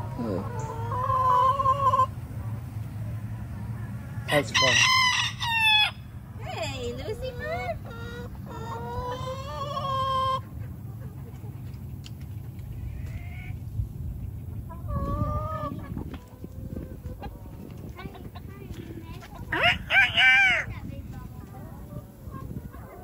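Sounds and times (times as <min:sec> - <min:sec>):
hens clucking: 0:00.0 - 0:23.0
rooster crowing: 0:04.3 - 0:06.1.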